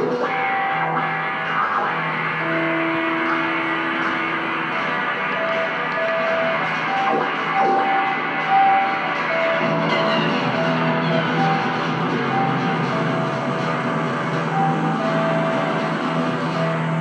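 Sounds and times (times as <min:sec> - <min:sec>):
electric guitar held notes: 0:00.0 - 0:17.0.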